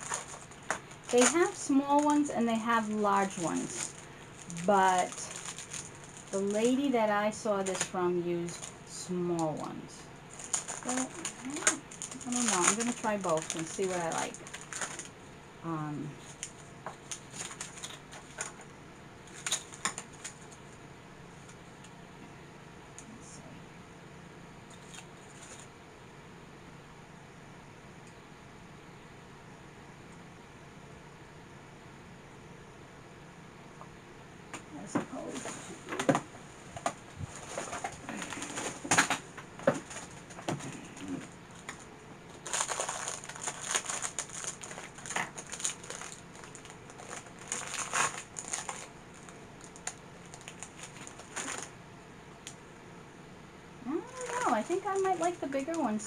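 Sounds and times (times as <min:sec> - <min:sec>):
rustling: 0:00.0 - 0:06.9, 0:10.3 - 0:15.2, 0:16.1 - 0:20.8, 0:35.1 - 0:51.7.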